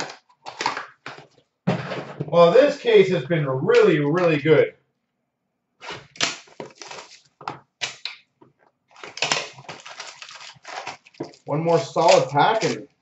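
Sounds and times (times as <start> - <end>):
foil pack crinkling: 0.0 - 1.4, 5.8 - 8.2, 8.9 - 13.0.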